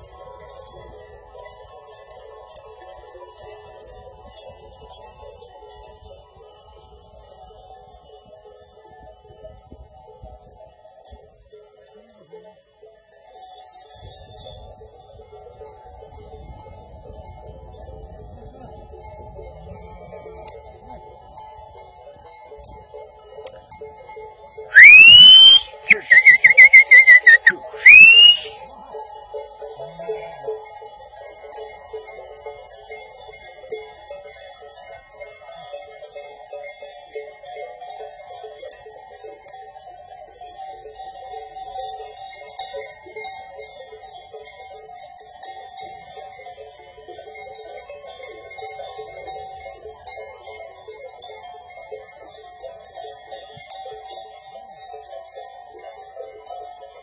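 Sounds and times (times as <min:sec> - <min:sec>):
person whistling loudly: 0:24.8 - 0:28.6.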